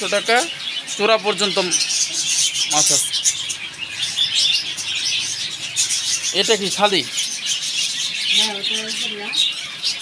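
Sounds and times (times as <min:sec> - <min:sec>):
small birds chirping and twittering: 0:00.0 - 0:10.0.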